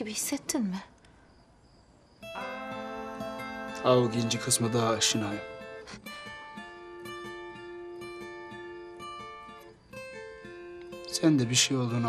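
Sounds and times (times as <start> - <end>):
soft acoustic guitar music: 2.2 - 12.0.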